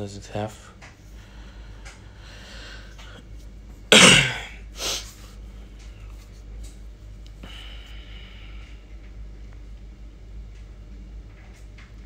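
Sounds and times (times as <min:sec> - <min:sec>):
man coughing: 0:03.9 - 0:04.6.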